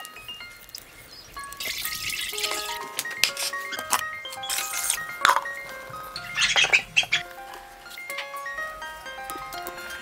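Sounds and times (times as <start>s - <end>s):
soft background music: 0.0s - 10.0s
bird squawking: 6.2s - 7.2s.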